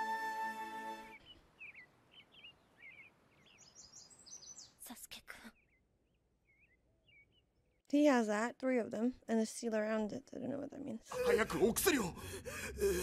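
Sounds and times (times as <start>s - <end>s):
birds chirping: 0.6s - 8.3s.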